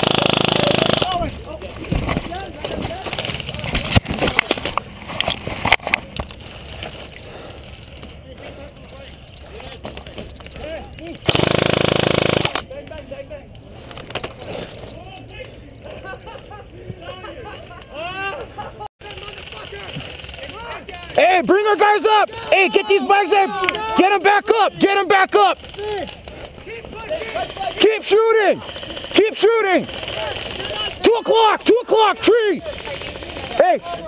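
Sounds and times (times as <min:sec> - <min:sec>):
sharp cracks: 0:00.0 - 0:01.3, 0:10.0 - 0:12.7, 0:19.0 - 0:21.8, 0:23.6 - 0:33.7
distant shouting voices: 0:19.6 - 0:34.0.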